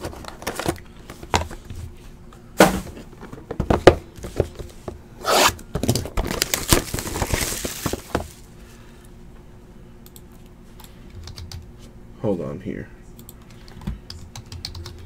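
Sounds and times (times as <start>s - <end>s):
cardboard sliding and rubbing: 5.2s - 5.6s.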